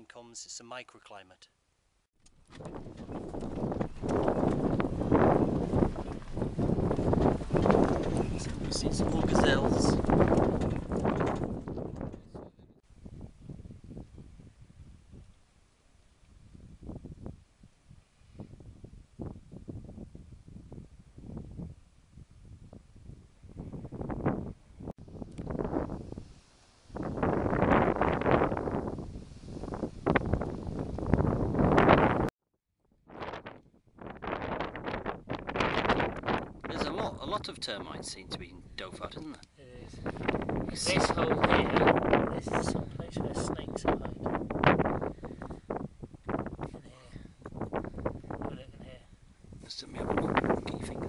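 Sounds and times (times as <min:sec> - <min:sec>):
wind buffeting microphone: 0:02.3 - 0:32.3, 0:33.0 - 0:51.0.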